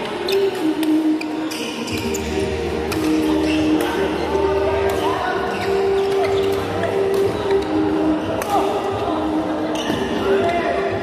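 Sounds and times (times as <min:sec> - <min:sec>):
shoes squeaking on court floor: 0:00.0 - 0:08.9, 0:09.7 - 0:10.9
rackets striking shuttlecock: 0:08.4 - 0:08.7.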